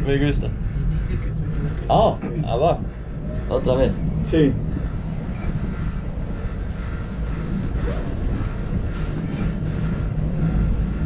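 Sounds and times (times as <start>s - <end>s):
cable car cabin rumble: 0.0s - 11.0s.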